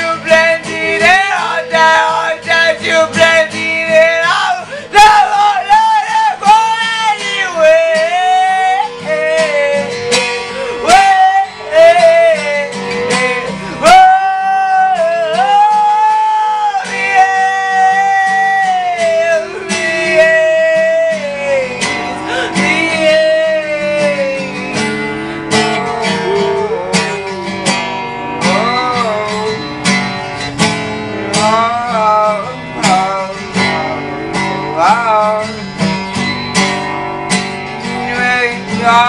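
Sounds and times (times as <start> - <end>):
strummed acoustic guitar: 0.0 - 39.0
person singing high notes: 25.5 - 29.6.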